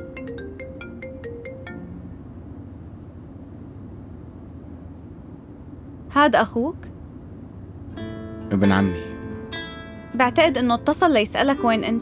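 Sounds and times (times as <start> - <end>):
marimba-like ringtone melody: 0.0 - 2.2
low steady rumble: 0.0 - 12.0.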